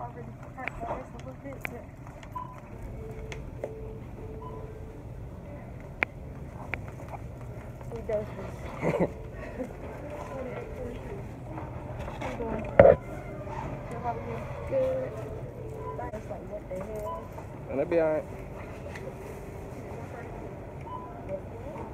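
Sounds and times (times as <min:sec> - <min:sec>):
steady low hum: 0:00.0 - 0:21.9.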